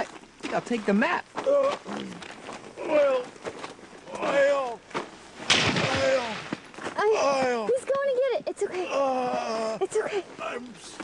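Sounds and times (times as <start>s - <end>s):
loud thump: 5.5s - 6.6s.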